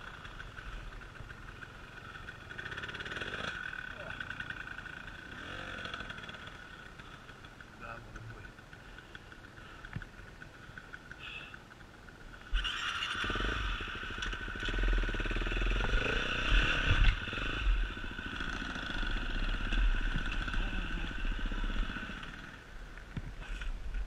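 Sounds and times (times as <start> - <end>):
dirt bike engine revving: 0.0 - 7.4, 12.4 - 22.6.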